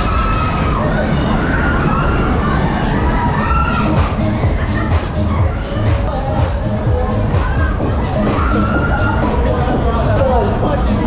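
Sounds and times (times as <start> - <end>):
fairground music with heavy bass: 3.6 - 11.0.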